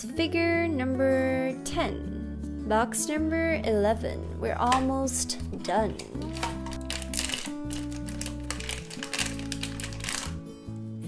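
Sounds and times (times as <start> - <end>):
background music with held notes: 0.0 - 11.0
foil bag crinkling: 6.2 - 10.4.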